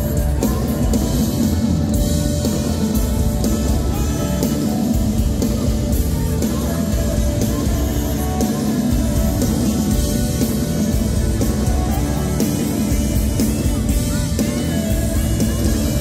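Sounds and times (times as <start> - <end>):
drum kit beat: 0.0 - 16.0
electric bass: 0.0 - 16.0
electric guitars: 0.0 - 16.0.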